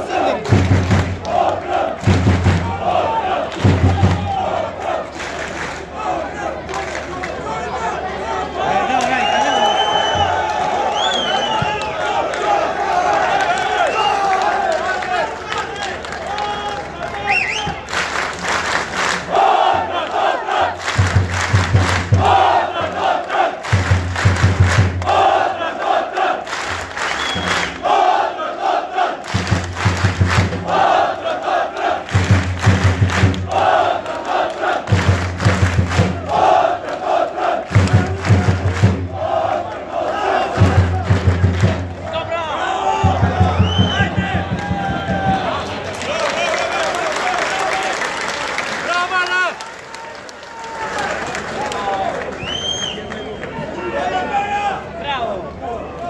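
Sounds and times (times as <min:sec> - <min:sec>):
rhythmic drum beats: 0:00.0 - 0:05.8, 0:17.6 - 0:25.6, 0:29.2 - 0:46.0
football supporters chanting: 0:00.0 - 0:09.4, 0:10.0 - 0:17.9, 0:18.8 - 0:47.8.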